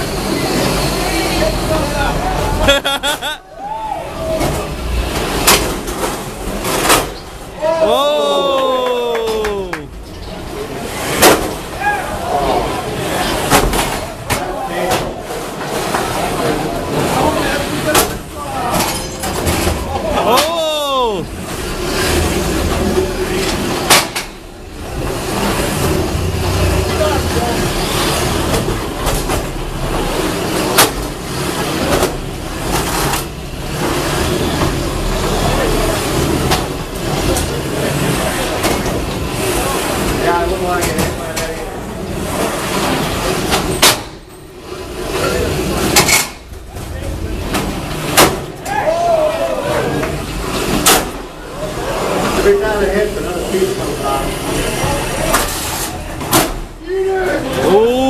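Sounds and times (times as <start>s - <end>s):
crowd chattering: 0.0s - 58.0s.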